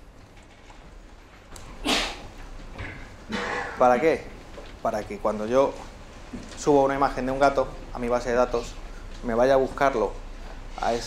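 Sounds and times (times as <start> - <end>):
man coughing: 3.3 - 4.0.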